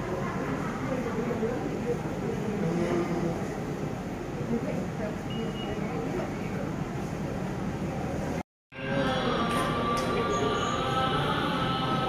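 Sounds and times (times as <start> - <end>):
murmur of voices: 0.0 - 12.0
steady background hum: 0.0 - 12.0.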